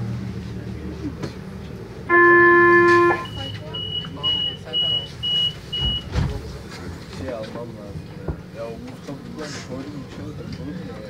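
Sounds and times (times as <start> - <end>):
short high beeps: 2.1 - 5.6
tram door warning tone: 2.1 - 6.2.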